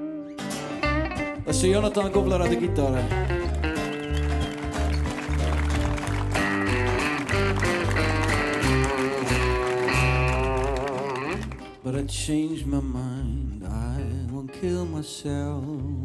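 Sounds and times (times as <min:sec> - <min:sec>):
electric lead guitar bending notes: 0:00.0 - 0:11.8
strummed acoustic guitar: 0:00.0 - 0:12.4
electric bass: 0:00.7 - 0:16.0.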